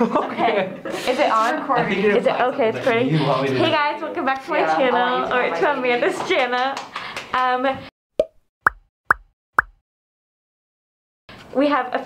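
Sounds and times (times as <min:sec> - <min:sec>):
upward-sweeping pop effects: 0:08.2 - 0:09.8.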